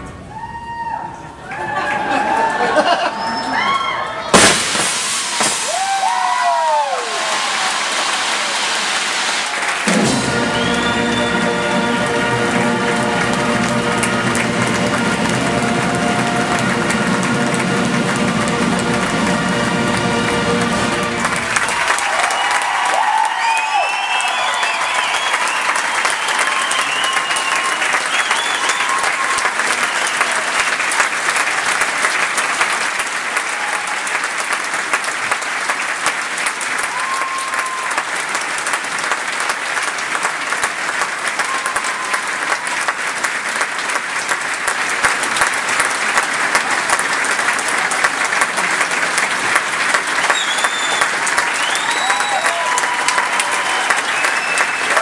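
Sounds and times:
scattered cheers: 0.2 - 11.9, 15.2 - 17.2, 21.5 - 31.1, 33.3 - 34.4, 36.7 - 38.4, 41.2 - 43.0, 49.9 - 55.0
audience applauding: 0.4 - 55.0.

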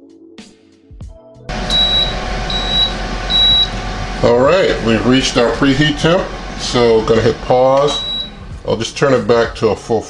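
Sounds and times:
quiet background music: 0.0 - 10.0
oven convection fan running: 1.5 - 9.8
short high beeps: 1.7 - 3.7, 7.9 - 8.4.

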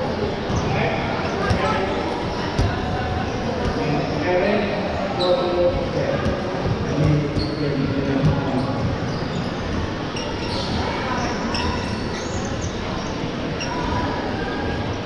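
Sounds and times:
balls bouncing: 1.3 - 1.9, 5.7 - 9.1.

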